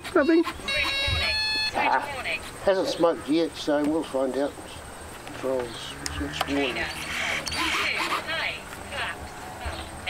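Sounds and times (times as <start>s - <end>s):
background voices talking: 0.0s - 10.0s.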